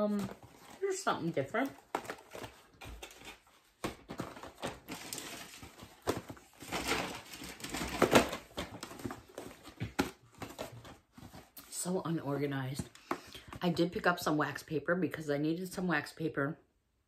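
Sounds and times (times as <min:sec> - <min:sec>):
cardboard boxes knocking and rustling: 0:00.1 - 0:11.6.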